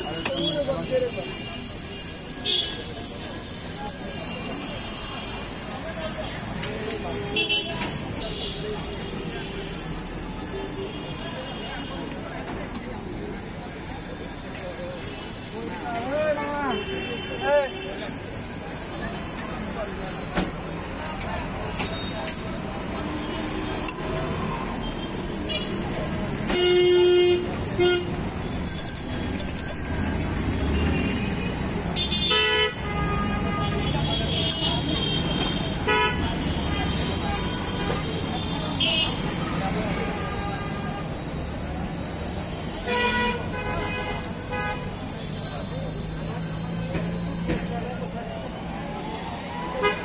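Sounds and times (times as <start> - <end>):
background chatter: 0.0 - 50.0
traffic noise: 0.0 - 50.0.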